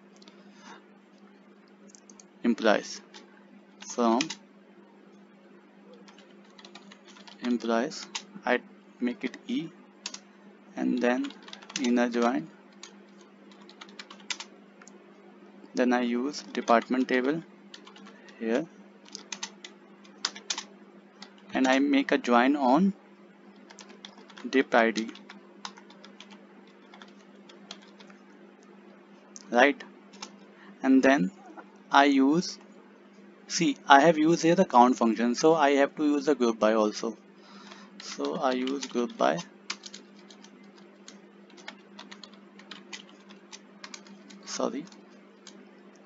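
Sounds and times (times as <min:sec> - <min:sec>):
steady low hum: 0:00.0 - 0:46.0
computer keyboard typing: 0:01.9 - 0:02.3, 0:03.0 - 0:04.4, 0:06.0 - 0:08.3, 0:10.0 - 0:10.2, 0:11.0 - 0:14.5, 0:16.4 - 0:17.1, 0:17.7 - 0:18.3, 0:19.0 - 0:21.8, 0:23.6 - 0:28.2, 0:30.1 - 0:30.3, 0:37.6 - 0:45.6.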